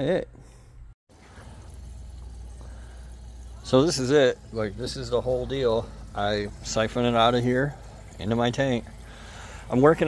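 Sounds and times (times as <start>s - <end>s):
liquid flowing through hose: 1.1s - 10.0s.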